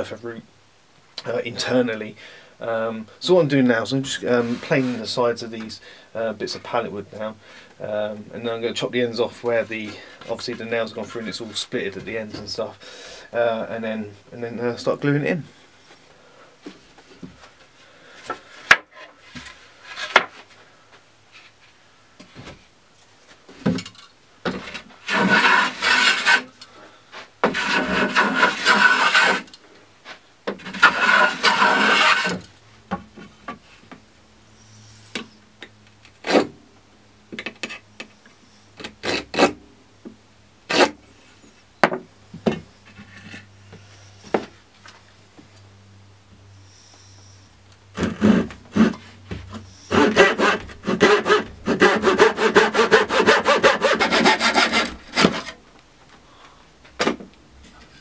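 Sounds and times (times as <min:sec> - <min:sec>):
backsaw cutting wood: 0:25.0 - 0:26.5, 0:27.4 - 0:29.5, 0:30.6 - 0:32.4, 0:48.0 - 0:49.0, 0:49.8 - 0:55.6
rasping strokes on wood: 0:25.0 - 0:26.5, 0:27.4 - 0:29.5, 0:30.6 - 0:32.4, 0:48.0 - 0:49.1, 0:49.7 - 0:55.6.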